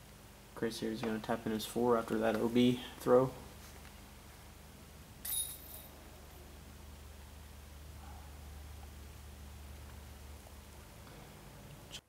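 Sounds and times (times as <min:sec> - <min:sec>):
disc hitting metal chains: 0:05.2 - 0:06.0.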